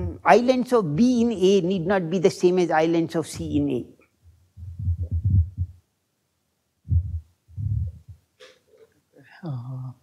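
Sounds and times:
lapel microphone thumps and rubbing: 4.2 - 5.8, 6.8 - 8.9.

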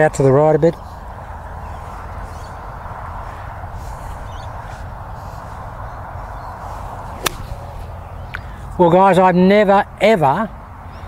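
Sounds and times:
golf club striking ball: 7.1 - 8.4.

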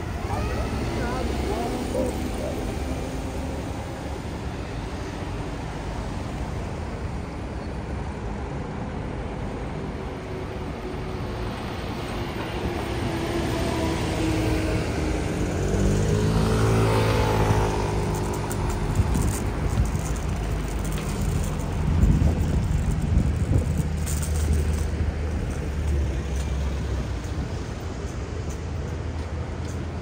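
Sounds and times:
concrete mixer diesel engine passing: 0.0 - 5.6
cars and van passing: 0.0 - 30.0.

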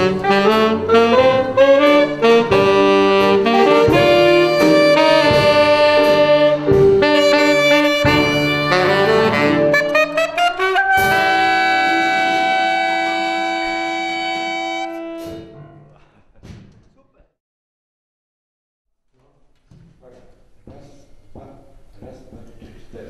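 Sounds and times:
wind band playing: 0.0 - 15.9
alto saxophones: 0.0 - 16.0.

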